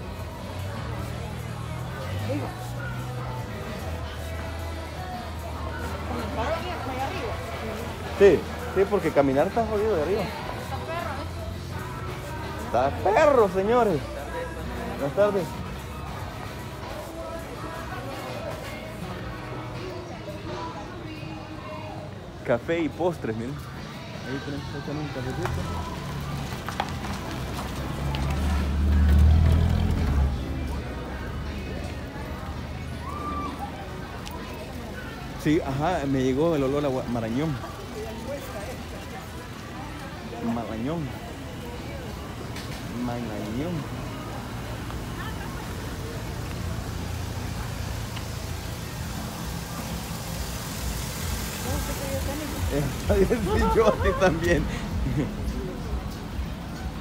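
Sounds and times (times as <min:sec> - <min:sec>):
faint voices: 0:00.0 - 0:57.0
cars passing at low speed: 0:24.4 - 0:57.0
car driving over cobblestones: 0:25.3 - 0:32.3.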